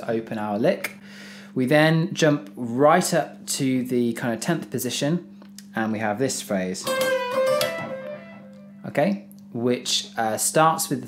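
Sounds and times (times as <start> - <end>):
electric guitar notes with bend: 6.8 - 8.9.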